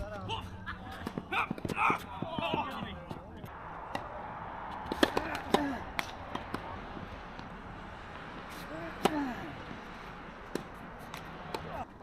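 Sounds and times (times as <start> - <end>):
players calling out: 0.0 - 7.5
tennis balls bouncing: 0.7 - 11.9.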